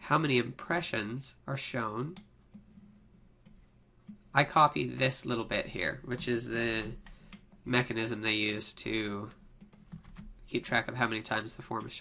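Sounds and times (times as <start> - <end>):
low steady hum: 0.0 - 12.0
computer mouse clicks: 6.8 - 7.6, 9.6 - 10.3.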